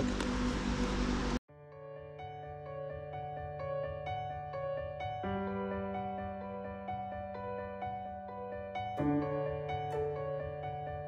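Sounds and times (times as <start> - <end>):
gentle music with held notes: 1.6 - 11.0.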